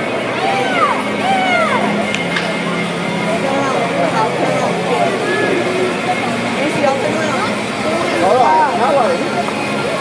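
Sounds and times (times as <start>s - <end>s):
crowd chatter: 0.0s - 10.0s
steady low hum: 0.0s - 10.0s.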